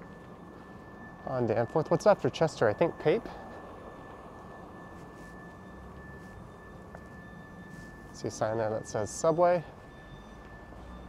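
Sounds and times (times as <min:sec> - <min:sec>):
distant traffic rumble: 0:00.0 - 0:11.0
high-pitched whine: 0:00.0 - 0:11.0.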